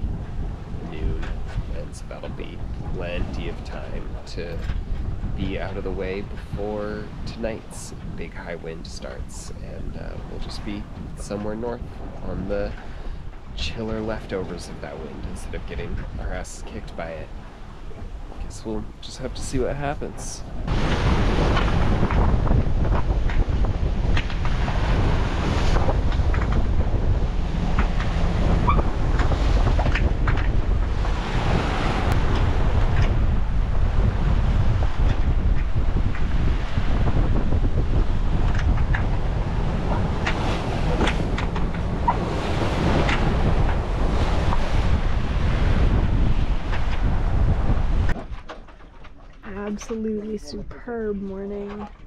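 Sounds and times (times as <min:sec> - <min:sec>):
water splashing along boat hull: 0:00.0 - 0:52.0
wind buffeting microphone: 0:00.0 - 0:52.0.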